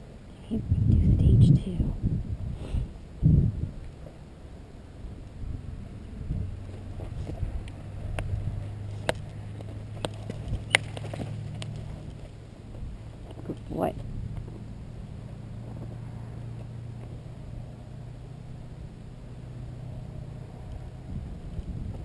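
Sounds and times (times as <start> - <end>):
low motor hum: 0.0 - 22.0
horse moving on sand: 6.6 - 17.4.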